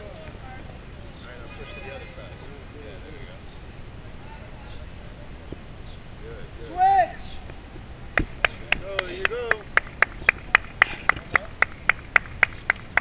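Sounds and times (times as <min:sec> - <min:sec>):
person shouting: 0:06.6 - 0:07.3
sharp rhythmic claps: 0:08.1 - 0:13.0.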